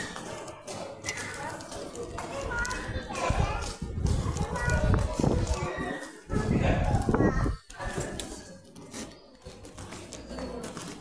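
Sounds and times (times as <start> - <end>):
people and children chattering: 0.0 - 11.0.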